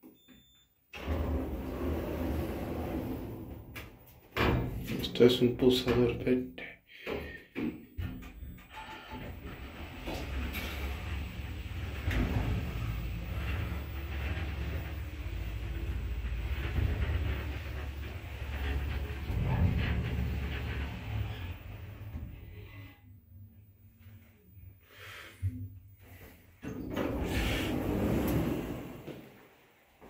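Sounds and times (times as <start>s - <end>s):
lift car low rumble: 1.0s - 5.5s, 8.2s - 24.8s, 25.4s - 30.0s.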